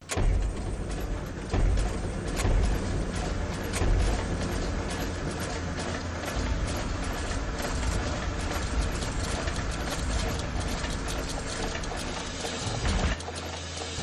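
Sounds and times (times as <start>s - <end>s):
mechanical clattering and rumble: 0.0s - 14.0s
music: 0.0s - 14.0s.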